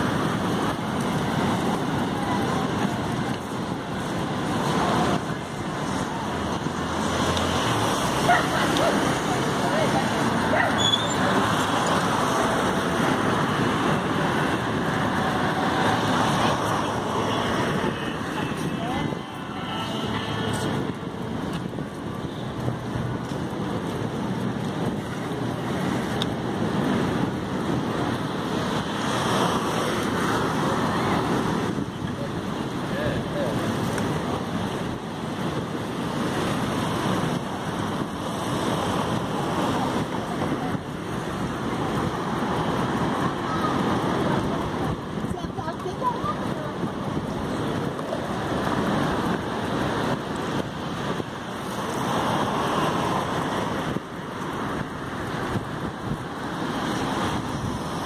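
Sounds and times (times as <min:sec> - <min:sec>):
cars passing: 0:00.0 - 0:58.0
wind buffeting microphone: 0:00.0 - 0:58.0.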